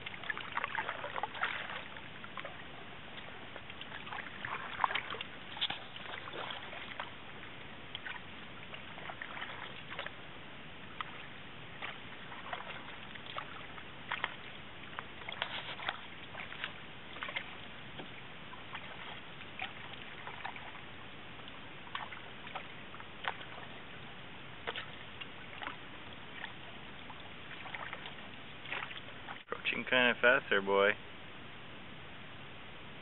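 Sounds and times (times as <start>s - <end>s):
paddle splashes and drips: 0.0s - 30.9s.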